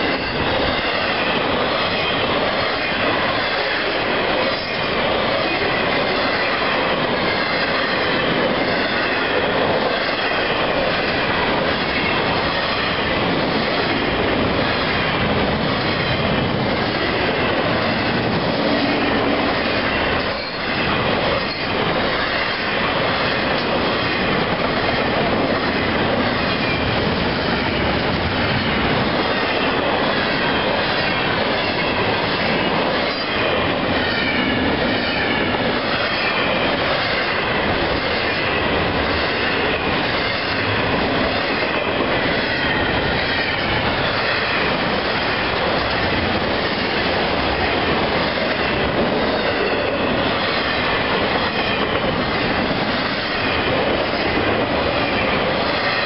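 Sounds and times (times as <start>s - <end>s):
train cars rumbling past: 0.0s - 56.0s
high wheel squeal: 19.8s - 22.6s.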